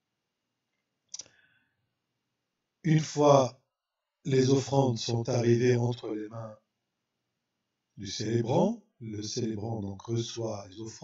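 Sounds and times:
man speaking: 0:02.9 - 0:03.5, 0:04.3 - 0:06.6, 0:08.0 - 0:11.0.

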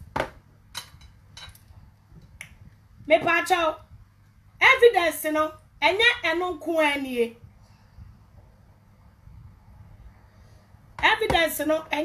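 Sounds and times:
faint low hum: 0:00.0 - 0:12.0
woman breathing: 0:10.1 - 0:10.9.

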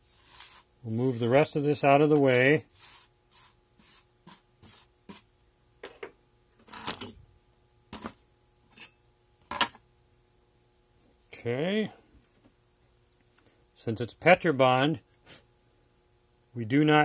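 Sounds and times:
metal rod scraping sand on tray: 0:00.1 - 0:01.8.

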